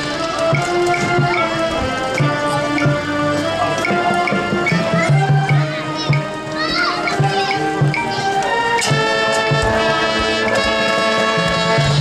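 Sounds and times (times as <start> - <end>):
children's voices: 0.0 - 11.6
brass chords: 0.0 - 12.0.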